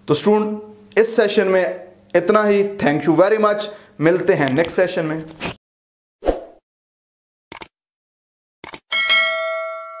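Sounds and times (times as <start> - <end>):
bell ding: 8.9 - 10.0.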